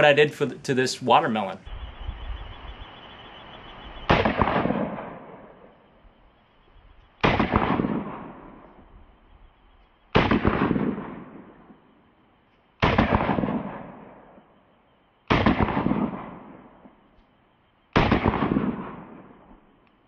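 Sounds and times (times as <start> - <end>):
pistol shots with echo: 4.1 - 5.7, 7.2 - 8.8, 10.1 - 11.8, 12.8 - 14.4, 15.3 - 17.0, 17.9 - 19.5.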